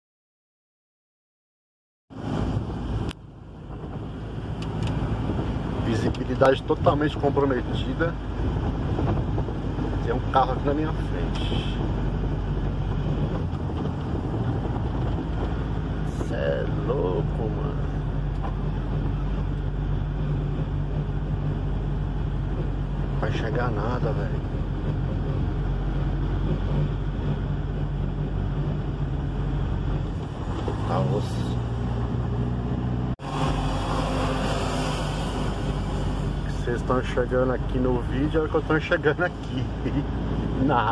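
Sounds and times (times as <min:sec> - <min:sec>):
road noise: 0:02.1 - 0:40.9
vehicle engine rumble: 0:02.1 - 0:40.9.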